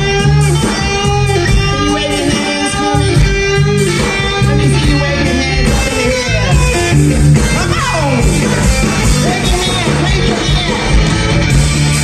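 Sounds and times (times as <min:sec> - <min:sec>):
bass and drums: 0:00.0 - 0:12.0
electric guitar: 0:00.0 - 0:12.0.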